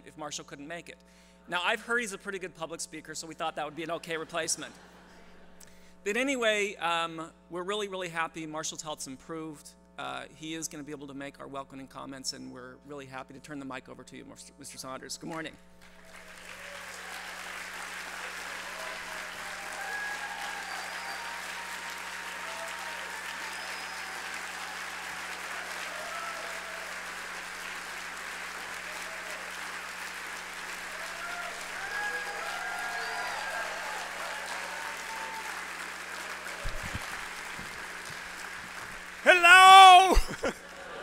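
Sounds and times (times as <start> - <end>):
audience applauding: 15.8 - 41.0
microphone handling thumps: 36.6 - 37.8.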